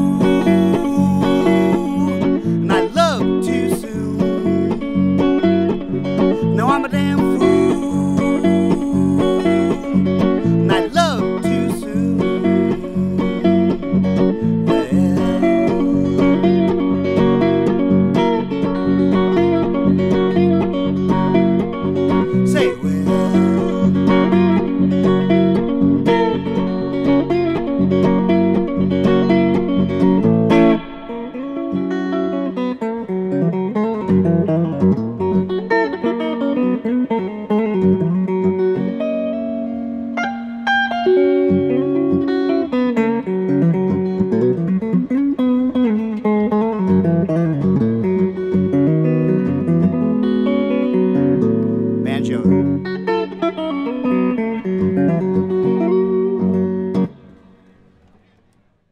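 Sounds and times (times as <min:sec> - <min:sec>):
archtop guitar strumming and picking: 0:00.0 - 0:58.4.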